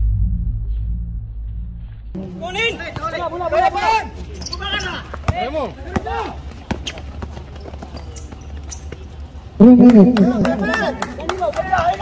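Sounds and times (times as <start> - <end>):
players' voices calling out: 2.2 - 12.0
basketball bouncing on hard court: 4.4 - 8.5.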